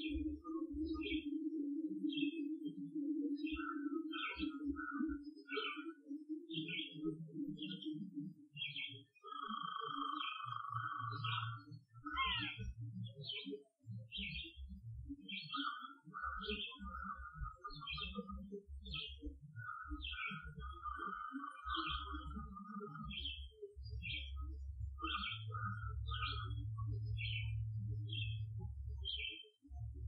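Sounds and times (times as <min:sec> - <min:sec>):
birds chirping: 0:03.4 - 0:05.9, 0:08.6 - 0:30.0.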